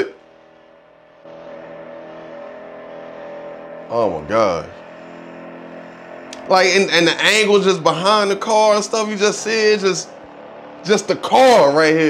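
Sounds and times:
car engine running hard: 0.0 - 12.0.

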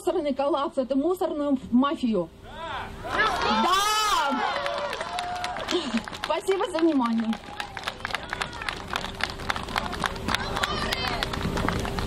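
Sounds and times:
crowd voices: 2.5 - 6.4, 7.3 - 12.0
crowd clapping: 3.2 - 12.0.

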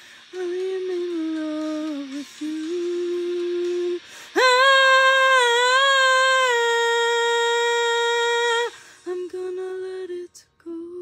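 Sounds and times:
woman singing long high note: 0.3 - 11.0.

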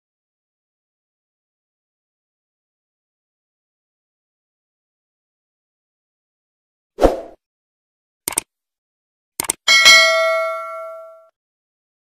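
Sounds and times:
double mouse click: 8.3 - 8.5, 9.4 - 9.6
bright bell ding: 9.7 - 11.3.

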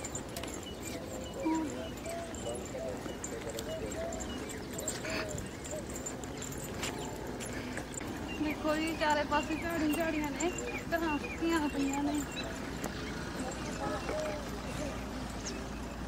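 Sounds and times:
faint voices talking: 0.0 - 16.0
footsteps on dirt path: 0.0 - 16.0.

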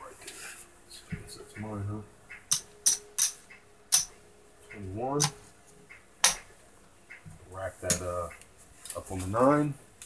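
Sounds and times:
casino chips clacking: 2.4 - 5.4.

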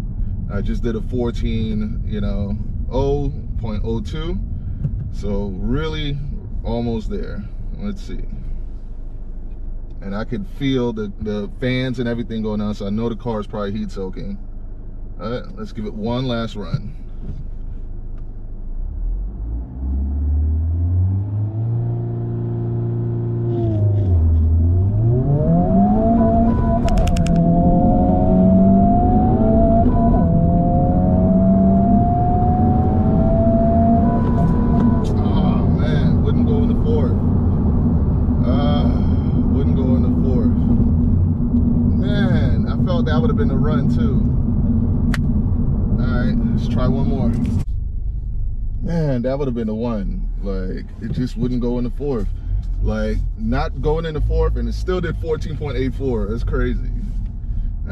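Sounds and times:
car engine accelerating: 0.0 - 57.9
gear upshifts: 19.3 - 49.7.

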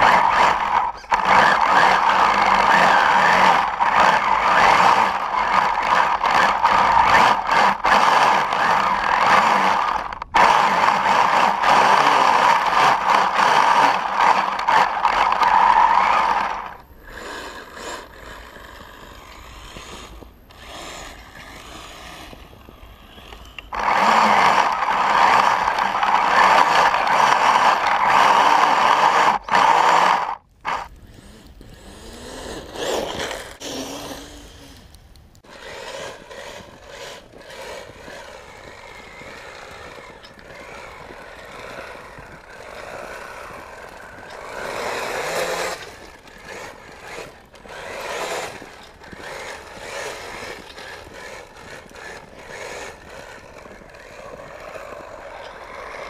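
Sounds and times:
electric motor and gearbox whir: 0.0 - 56.0.

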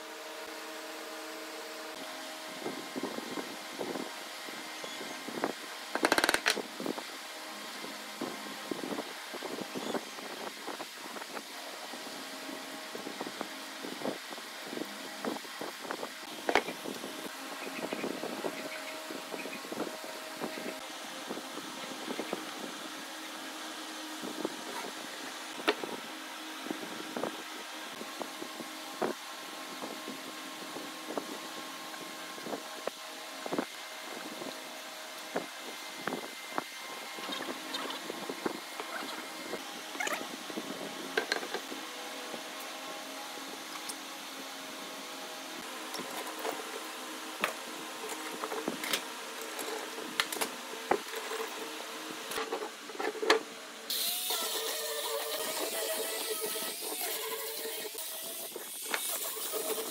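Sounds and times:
clicks and knocks of handled boards: 6.0 - 6.6.

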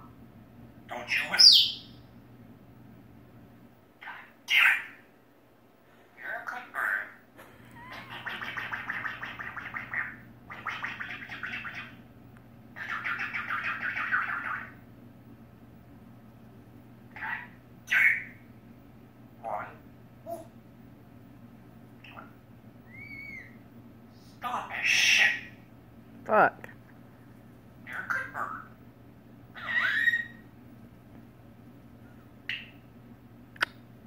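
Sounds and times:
parrot speech-like chatter: 0.9 - 1.6, 4.0 - 5.0, 6.2 - 7.2, 7.8 - 12.0, 12.8 - 14.8, 17.1 - 18.3, 19.4 - 20.4, 24.4 - 25.6, 27.8 - 28.8, 29.6 - 30.4
parrot whistle: 22.9 - 23.6, 29.6 - 30.4.

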